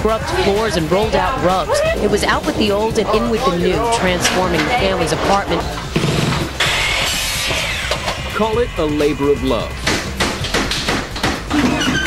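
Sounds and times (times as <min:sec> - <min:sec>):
background music: 0:00.0 - 0:12.0
power tool whining cut: 0:06.0 - 0:08.3.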